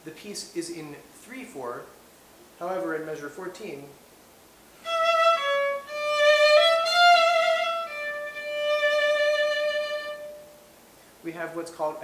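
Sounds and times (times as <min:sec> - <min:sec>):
solo violin: 0:04.8 - 0:10.7.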